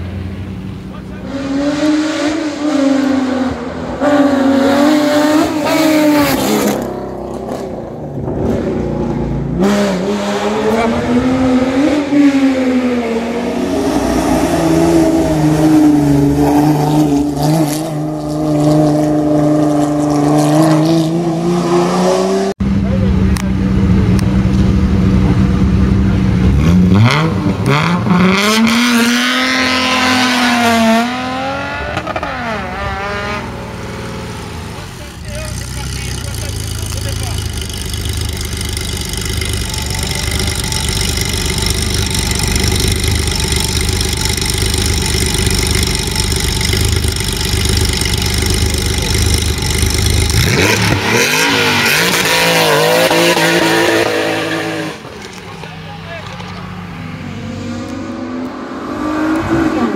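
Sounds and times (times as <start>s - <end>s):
car engine revving and accelerating: 0.0s - 55.4s, 56.6s - 59.9s
car engine idling: 33.6s - 51.7s.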